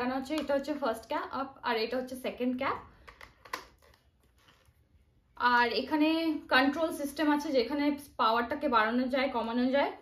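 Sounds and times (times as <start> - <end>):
plastic clicks and taps: 3.0 - 4.0.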